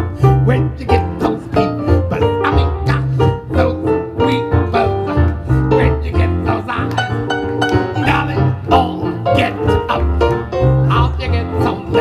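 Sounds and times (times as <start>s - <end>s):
upright bass plucked: 0.0s - 12.0s.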